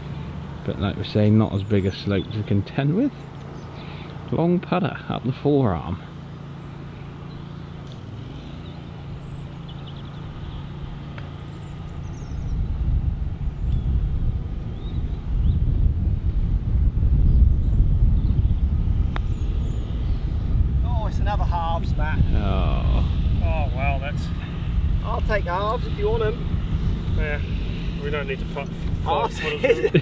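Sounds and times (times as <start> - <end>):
faint steady hum: 0.0 - 30.0
bird chirps: 0.2 - 4.2, 6.4 - 16.5, 17.2 - 20.6
wind buffeting microphone: 9.2 - 30.0.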